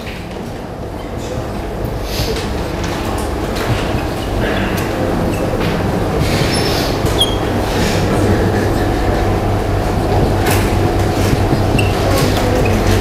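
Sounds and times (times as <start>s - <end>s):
low hum and rumble: 0.0s - 13.0s
marker squeaking on whiteboard: 6.2s - 7.5s, 11.2s - 13.0s.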